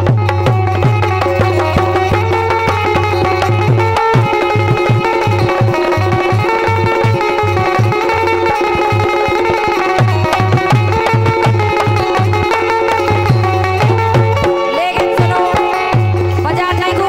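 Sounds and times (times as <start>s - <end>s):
dholak drum beat: 0.0s - 17.0s
harmonium melody: 0.0s - 17.0s.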